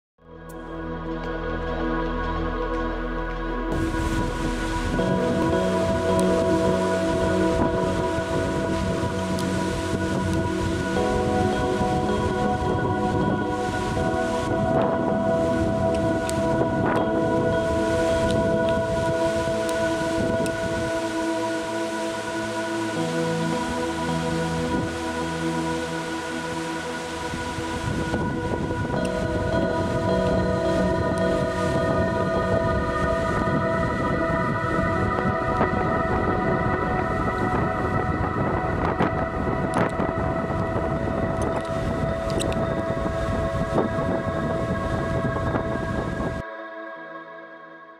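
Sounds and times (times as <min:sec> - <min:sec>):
background music of held chords: 0:00.2 - 0:47.9
steady rushing noise: 0:02.2 - 0:46.4.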